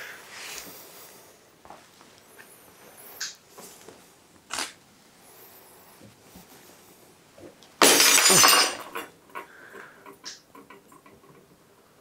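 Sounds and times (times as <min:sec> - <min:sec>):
light bulb shattering on floor: 0:07.8 - 0:09.2
glass pieces clinking: 0:07.8 - 0:09.5.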